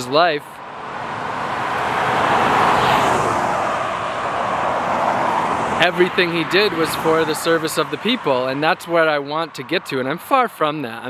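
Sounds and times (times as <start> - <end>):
car passing on highway: 0.5 - 9.8.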